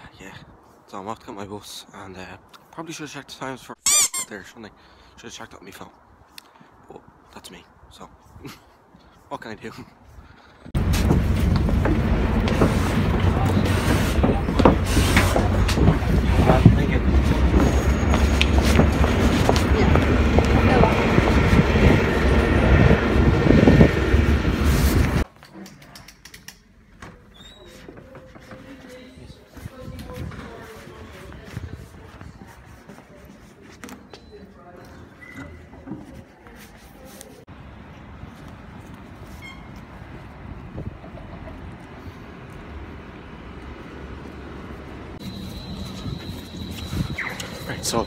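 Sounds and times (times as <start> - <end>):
street noise: 0.0 - 48.0
moving vehicle rumble and hiss: 10.7 - 25.3
short faint beep: 45.2 - 47.9.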